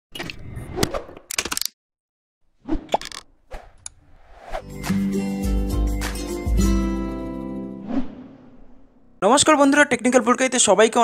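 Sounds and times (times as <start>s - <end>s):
music: 4.6s - 7.9s.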